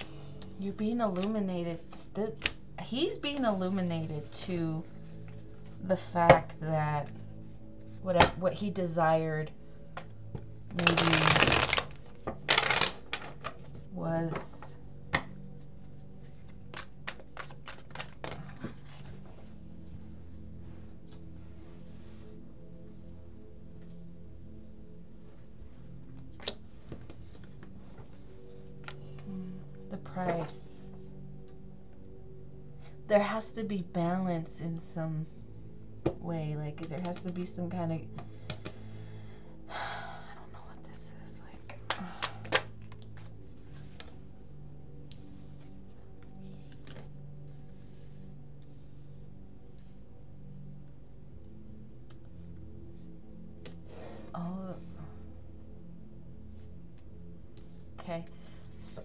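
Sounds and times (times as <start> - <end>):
cards riffle-shuffled: 10.7 - 13.9, 16.3 - 19.5.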